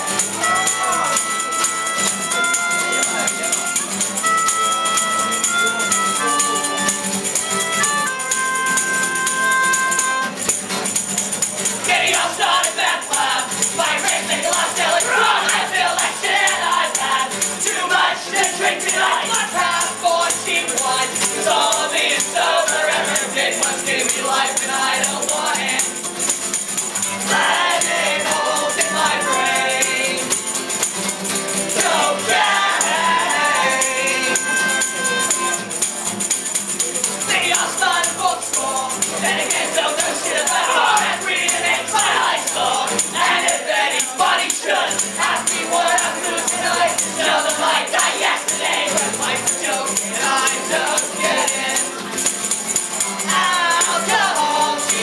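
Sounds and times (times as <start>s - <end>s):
voices singing: 0.0s - 10.4s, 11.2s - 55.0s
fiddle: 0.0s - 11.0s, 31.8s - 36.2s
hand percussion beat: 0.0s - 55.0s
strummed acoustic guitars: 0.0s - 55.0s.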